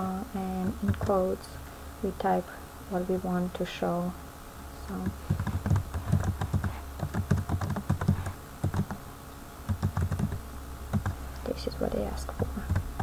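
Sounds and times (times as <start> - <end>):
computer keyboard typing: 0.6 - 1.2, 5.0 - 9.0, 9.7 - 11.2, 12.3 - 13.0.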